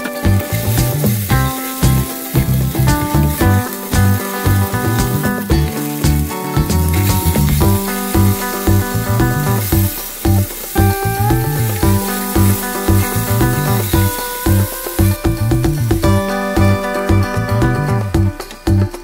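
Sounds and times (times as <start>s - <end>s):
vegetables sizzling in a frying pan: 0.0s - 17.6s
background music with bass beat: 0.0s - 19.0s.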